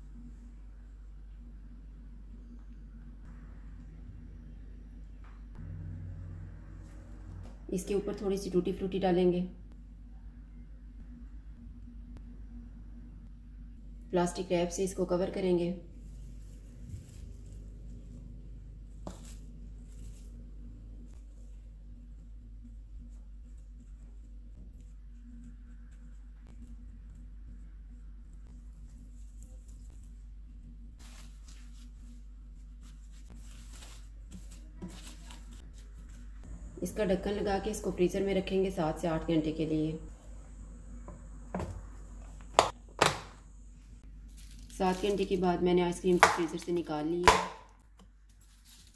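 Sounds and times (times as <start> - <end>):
low hum: 0.0 - 46.1.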